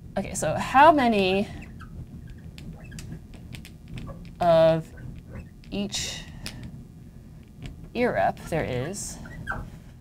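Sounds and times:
marker pen squeaking on glass: 1.5s - 5.7s, 9.2s - 9.7s.

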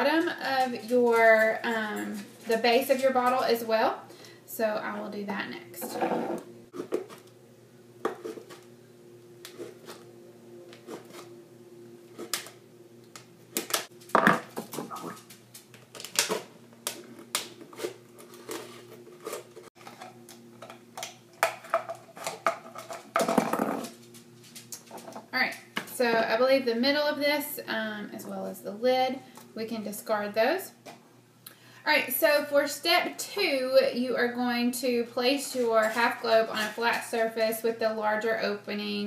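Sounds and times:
faint steady hum: 0.0s - 39.0s.

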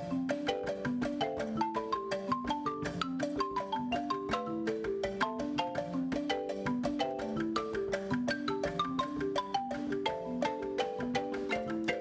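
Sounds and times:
marimba played with mallets: 0.0s - 12.0s
percussion hits: 0.0s - 12.0s.

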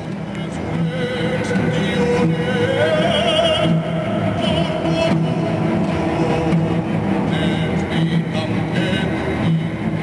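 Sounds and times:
cello and double bass chord: 0.0s - 10.0s.

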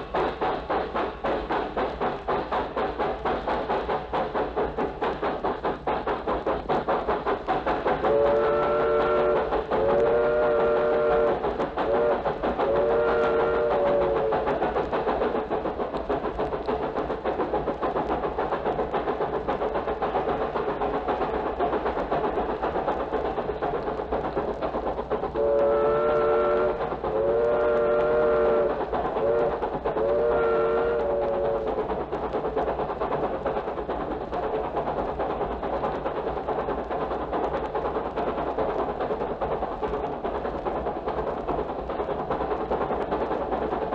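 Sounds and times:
train running rhythmic noise: 0.0s - 43.9s
train chord whistle: 8.1s - 14.4s, 25.4s - 31.7s.

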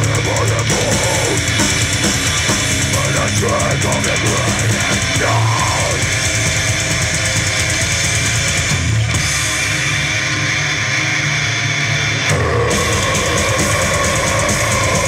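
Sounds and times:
bass guitar: 0.0s - 15.0s
drum kit: 0.0s - 15.0s
electric guitars: 0.0s - 15.0s.

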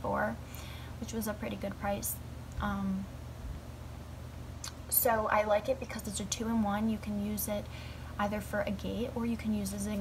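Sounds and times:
woman speaking: 0.0s - 0.4s, 1.0s - 3.1s, 4.7s - 10.0s
low steady hum: 0.0s - 10.0s.

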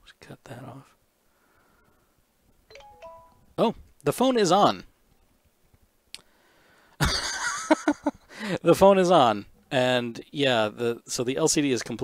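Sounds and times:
smartphone electronic chime: 2.7s - 3.5s.

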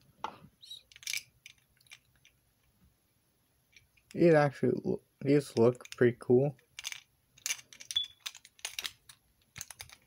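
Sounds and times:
plastic parts clicking: 0.8s - 2.3s, 5.6s - 10.0s.

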